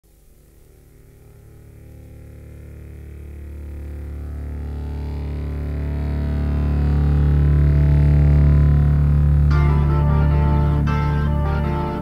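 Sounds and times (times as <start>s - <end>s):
low sustained rock chord: 0.1s - 12.0s.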